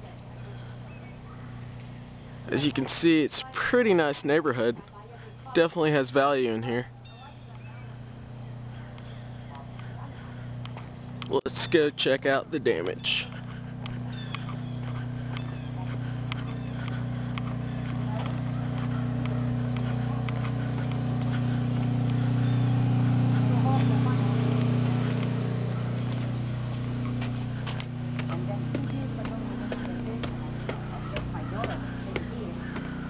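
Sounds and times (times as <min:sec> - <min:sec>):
low motor hum: 0:00.0 - 0:33.0
footsteps: 0:12.8 - 0:33.0.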